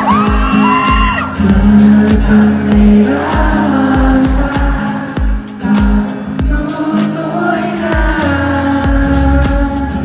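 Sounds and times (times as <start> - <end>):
crowd whooping: 0.0 - 1.4
live pop band music: 0.0 - 10.0.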